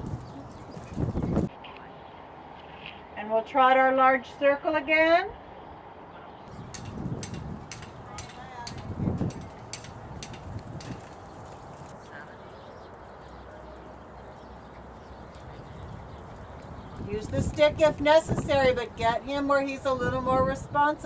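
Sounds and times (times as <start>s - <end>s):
steady outdoor hiss: 0.0s - 21.0s
horse hoofbeats on sand: 6.8s - 13.4s.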